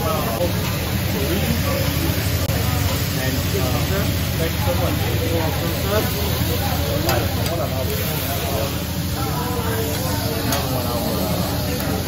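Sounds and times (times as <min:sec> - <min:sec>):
indistinct chatter: 0:00.0 - 0:12.0
food sizzling on a griddle: 0:00.1 - 0:12.0.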